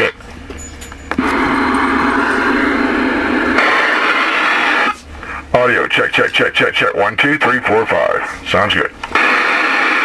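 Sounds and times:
low hum: 0.0 - 10.0
radio static hiss: 1.2 - 10.0.

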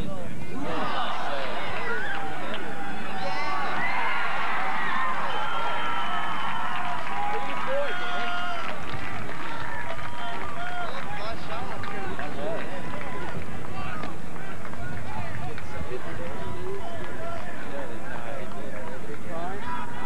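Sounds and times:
people shouting: 0.6 - 8.7.

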